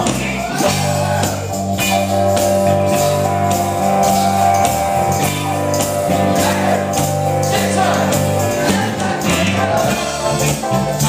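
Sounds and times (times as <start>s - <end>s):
steady drum beat: 0.0s - 10.8s
bass line: 0.0s - 11.0s
electric guitar chords: 0.0s - 11.0s
keyboard chords: 0.0s - 11.0s.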